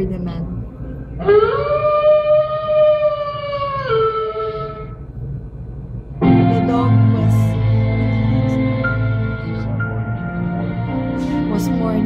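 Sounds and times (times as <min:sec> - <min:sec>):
dog howling: 0:01.2 - 0:05.0.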